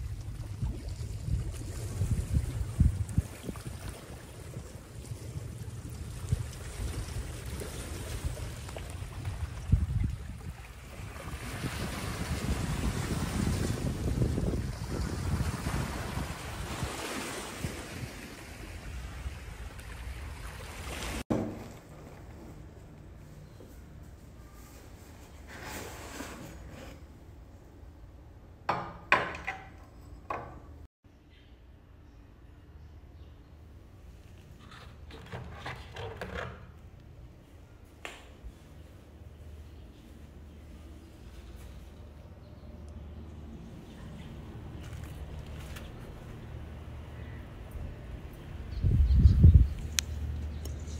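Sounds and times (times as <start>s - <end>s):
wind rumbling on microphone: 0.0s - 20.9s, 43.6s - 50.9s.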